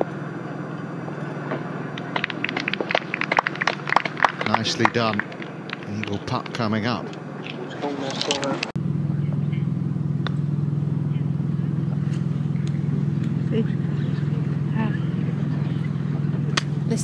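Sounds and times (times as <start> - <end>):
low engine hum: 0.0 - 17.0
putter striking golf ball: 1.5 - 7.7, 10.2 - 10.5.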